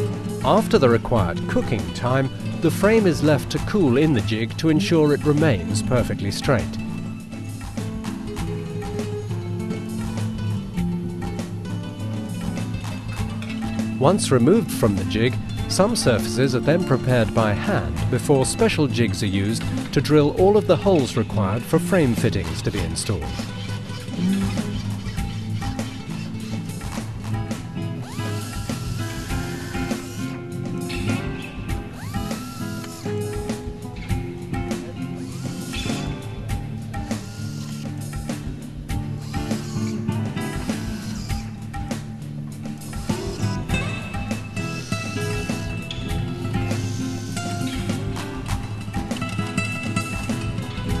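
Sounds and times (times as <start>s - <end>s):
background music with a beat: 0.0s - 51.0s
pneumatic drill boring: 23.3s - 27.1s, 28.0s - 33.6s, 35.2s - 36.2s, 37.0s - 42.0s, 42.8s - 49.3s.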